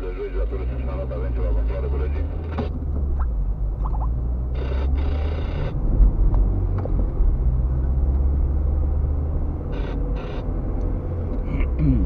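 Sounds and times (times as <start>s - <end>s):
car engine rumble: 0.0s - 12.0s
tyres on the road: 0.0s - 12.0s.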